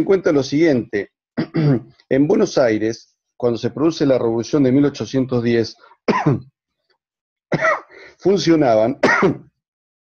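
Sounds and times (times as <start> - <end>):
man clearing his throat: 1.4 - 2.0, 6.1 - 6.5, 7.5 - 7.9, 9.0 - 9.6.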